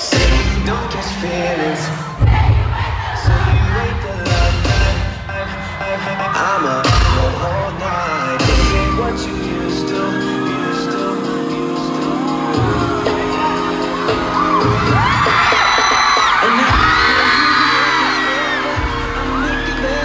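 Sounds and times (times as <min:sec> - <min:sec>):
audience screaming and whooping: 0:00.0 - 0:20.0
pop dance music with heavy beat: 0:00.0 - 0:20.0.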